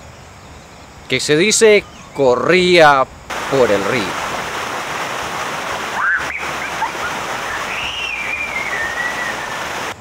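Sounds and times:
water rushing over rocks: 3.3s - 10.0s
thin sliding whistles: 7.5s - 9.6s.

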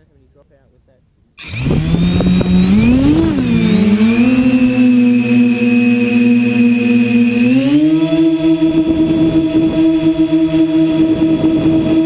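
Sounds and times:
quadcopter motors whining: 1.4s - 12.0s.

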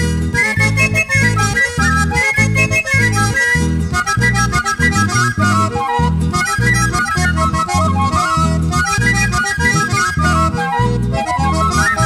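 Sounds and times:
accordion melody: 0.0s - 12.0s
guitars: 0.0s - 12.0s.

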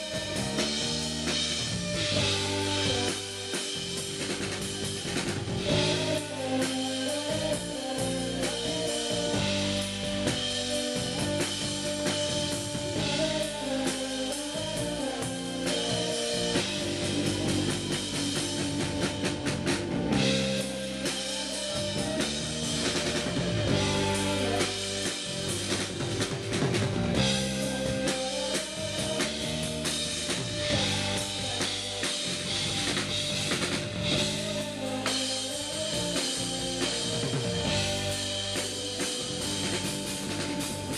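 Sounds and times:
drum kit: 0.0s - 40.9s
electric bass: 0.0s - 40.9s
guitar: 0.0s - 40.9s
keyboards: 0.0s - 40.9s.

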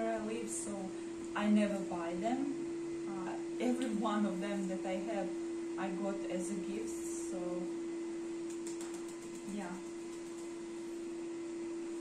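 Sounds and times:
muffled vacuum cleaner hum: 0.0s - 12.0s.

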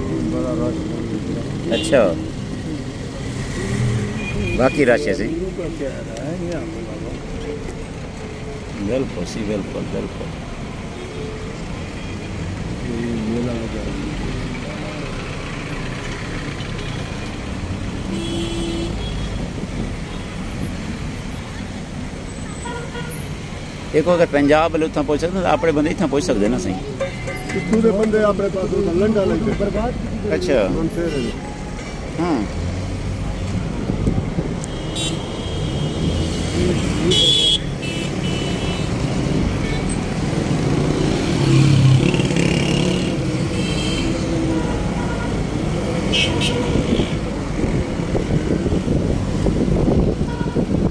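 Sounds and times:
cars and vans driving past: 0.0s - 50.9s
street traffic: 0.0s - 50.9s
vehicle horn: 18.1s - 19.4s, 22.6s - 23.2s, 34.6s - 38.9s, 43.5s - 45.4s, 46.1s - 47.2s, 50.2s - 50.7s.

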